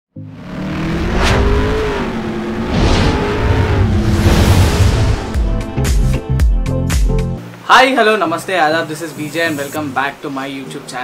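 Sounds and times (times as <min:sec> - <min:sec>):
car engine revving: 0:00.2 - 0:06.3
whooshes: 0:00.6 - 0:06.4.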